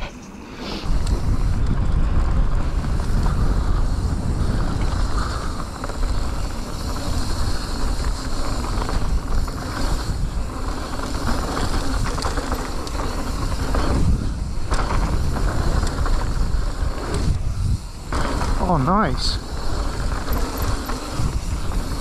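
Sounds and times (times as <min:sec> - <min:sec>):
bike clicks and rattles: 0:00.8 - 0:22.0
wind buffeting on microphone: 0:00.8 - 0:22.0
tyres rolling on dirt: 0:00.9 - 0:22.0.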